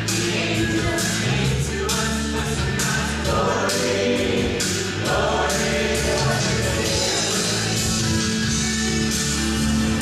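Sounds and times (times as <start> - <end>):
group of voices singing: 0.0 - 8.2
instrumental accompaniment with bass: 0.0 - 10.0.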